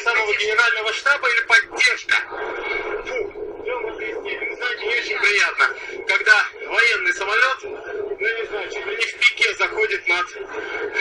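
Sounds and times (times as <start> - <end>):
man talking: 0.0 - 2.3, 3.0 - 11.0.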